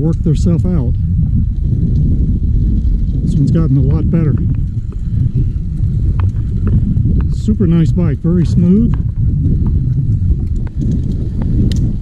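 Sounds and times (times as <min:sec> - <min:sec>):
bicycle tyre noise: 0:00.0 - 0:12.0
wind rumbling on microphone: 0:00.0 - 0:12.0.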